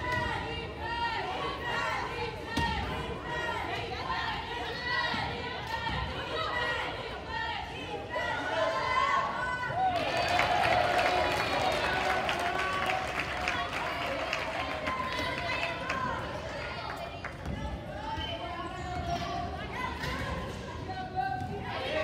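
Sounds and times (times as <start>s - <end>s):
people calling out in gym: 0.0s - 22.0s.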